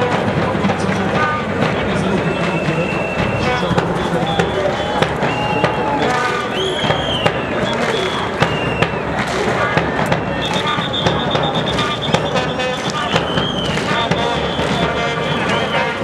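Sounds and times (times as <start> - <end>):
stadium crowd noise: 0.0 - 16.0
whistle blasts: 1.2 - 16.0
trilled whistle: 2.1 - 9.2, 10.0 - 16.0.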